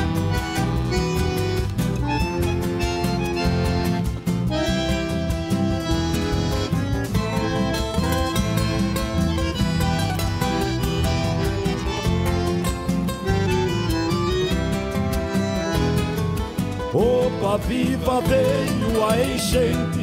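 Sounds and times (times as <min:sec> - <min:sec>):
bandoneon melody: 0:00.0 - 0:20.0
electric bass: 0:00.0 - 0:20.0
guitar: 0:00.0 - 0:20.0.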